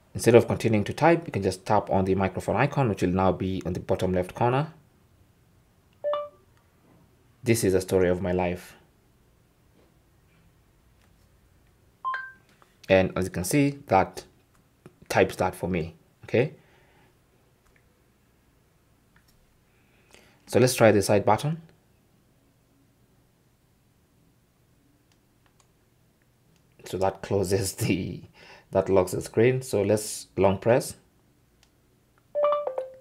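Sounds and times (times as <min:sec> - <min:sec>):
man speaking: 0:00.1 - 0:04.8, 0:07.4 - 0:08.8, 0:12.9 - 0:14.3, 0:15.1 - 0:16.6, 0:26.8 - 0:31.0
two-note electronic chime: 0:32.4 - 0:33.0.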